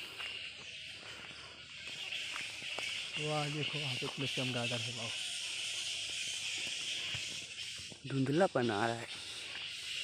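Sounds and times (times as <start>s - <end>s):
high-pitched chorus of forest insects: 0.0s - 10.0s.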